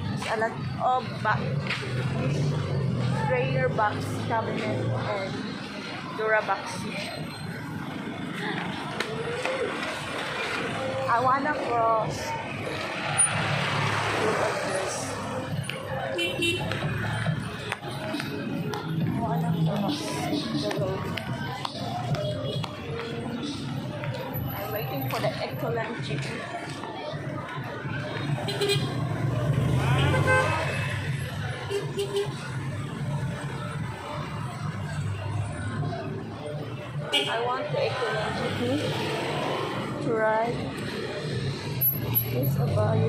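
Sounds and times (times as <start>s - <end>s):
busy street traffic: 0.0s - 43.0s
motor vehicle engine and road noise: 0.0s - 43.0s.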